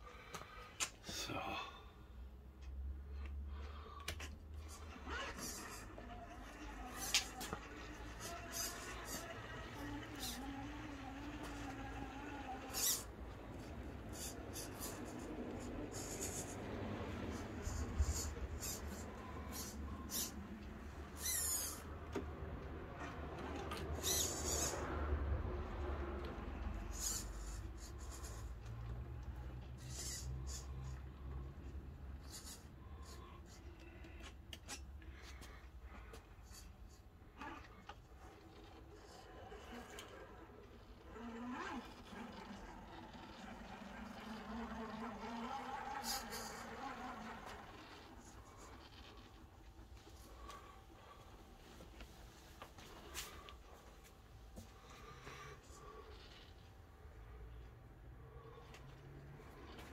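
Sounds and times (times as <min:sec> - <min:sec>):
electric motor whining: 0:04.8 - 0:22.3, 0:39.0 - 0:49.4.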